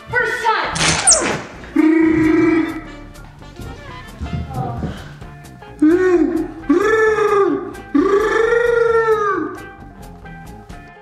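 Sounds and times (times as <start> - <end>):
man imitating lion roar: 1.8 - 3.1, 5.8 - 9.6.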